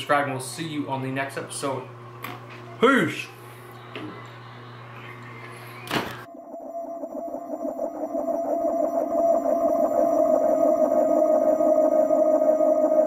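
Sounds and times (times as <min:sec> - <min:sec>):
electronic buzzing drone: 0:03.7 - 0:13.0
electronic outro music: 0:06.3 - 0:13.0.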